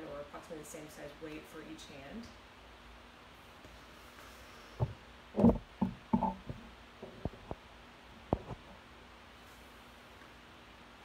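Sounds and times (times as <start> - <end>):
phone handling knocks and thumps: 4.8 - 7.5.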